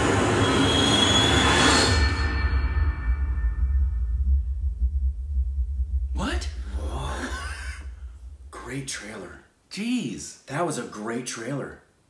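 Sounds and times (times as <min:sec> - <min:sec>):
deep bass rumble: 0:02.6 - 0:09.3.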